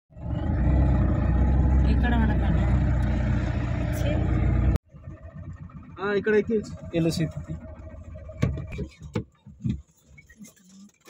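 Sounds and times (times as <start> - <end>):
vehicle engine and road noise: 0.1 - 11.0.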